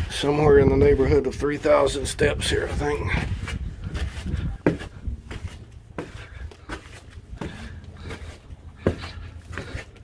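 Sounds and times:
footsteps on concrete steps: 0.0 - 10.0.

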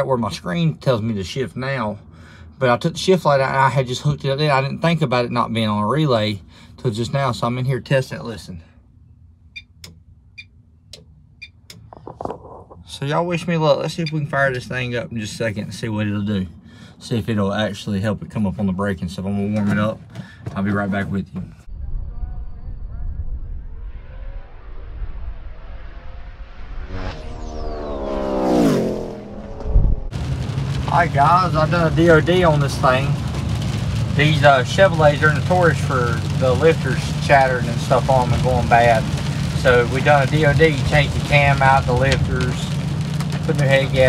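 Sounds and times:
race car engine revving: 24.4 - 44.0.

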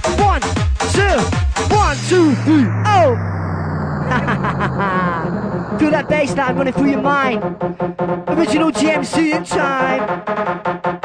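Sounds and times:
voice over music: 0.0 - 10.2
bounce dance music: 0.0 - 11.0
held bass note: 0.9 - 8.3
falling sweep: 1.7 - 7.7.

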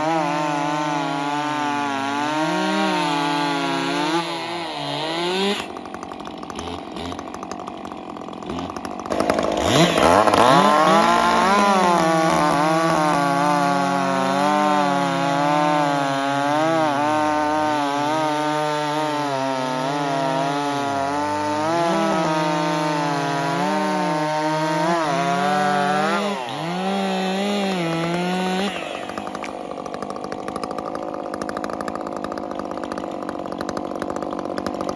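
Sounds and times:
chainsaws cutting log: 0.0 - 34.9
chainsaws idling: 0.0 - 34.9.

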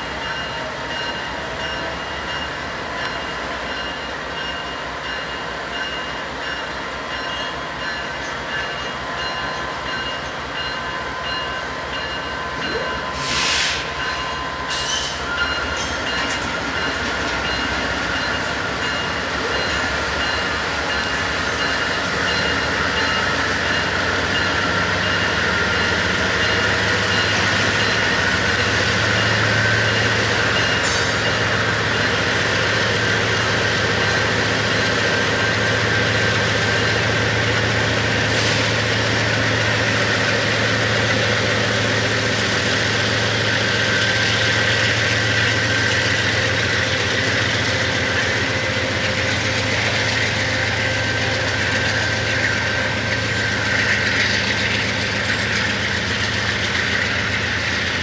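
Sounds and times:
diesel locomotive engines droning: 0.0 - 58.0.

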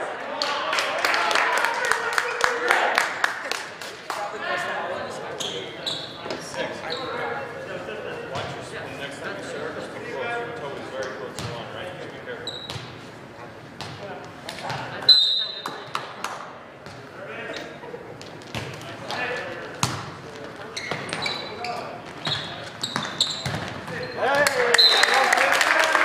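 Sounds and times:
shrill referee whistle: 15.1 - 15.7, 24.7 - 25.2.

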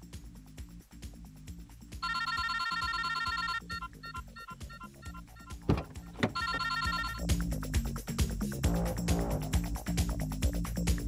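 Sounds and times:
mobile phone ringtone trilling: 2.0 - 7.2.

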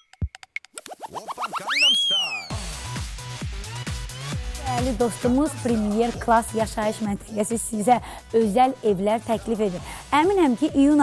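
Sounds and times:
electronic music with steady beat: 0.0 - 11.0.

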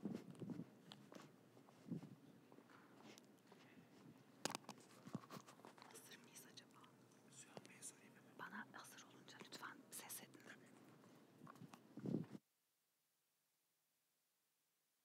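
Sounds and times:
small clicks and knocks: 4.4 - 5.9.

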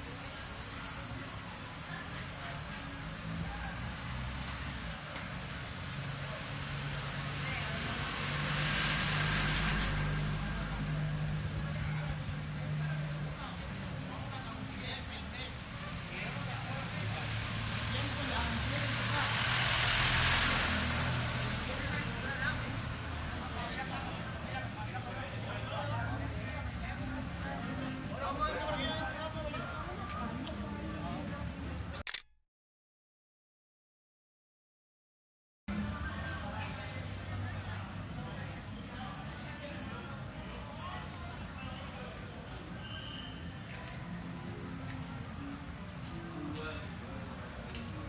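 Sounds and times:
street voices: 0.0 - 32.2, 35.7 - 48.0
truck engine passing by: 5.5 - 13.2, 16.8 - 23.6
camera shutter click: 32.0 - 32.3.

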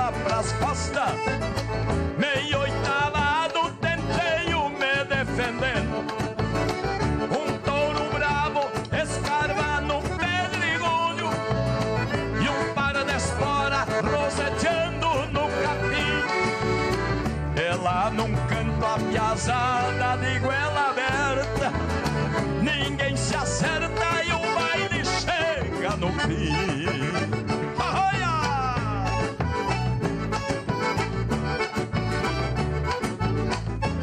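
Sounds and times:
accordions playing: 0.0 - 34.0
acoustic guitars: 0.0 - 34.0
bass guitar: 0.0 - 34.0.

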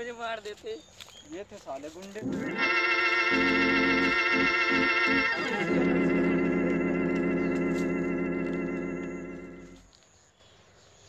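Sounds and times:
held synthesizer chord: 2.2 - 9.8.

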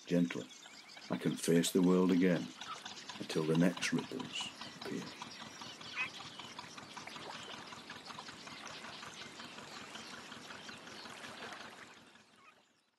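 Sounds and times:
water lapping against boat hull: 0.4 - 12.7.

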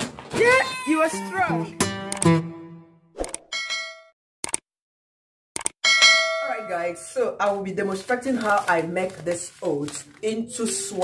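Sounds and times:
short bell-like ding: 5.8 - 6.7.

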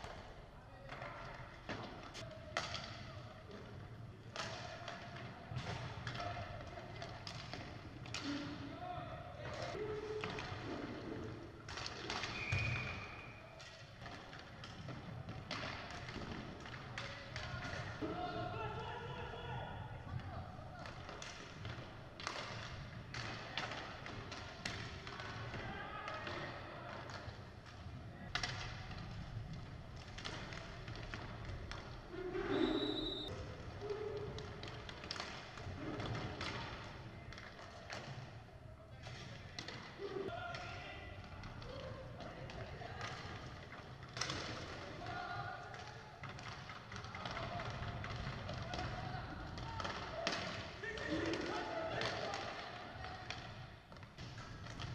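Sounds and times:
hockey sticks and puck clacking: 0.0 - 19.2, 20.0 - 54.9.

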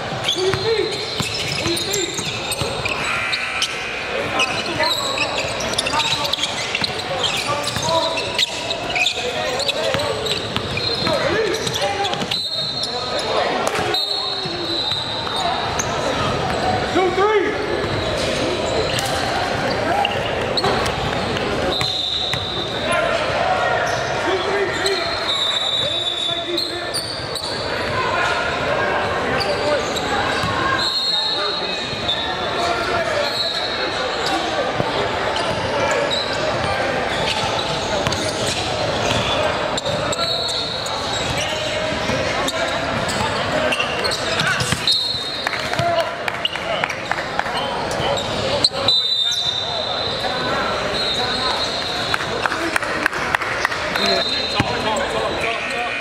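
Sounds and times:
sneaker squeaks: 0.0 - 52.3, 53.6 - 56.0
voices calling out: 0.1 - 56.0
basketball bouncing on wooden court: 9.9 - 12.3.

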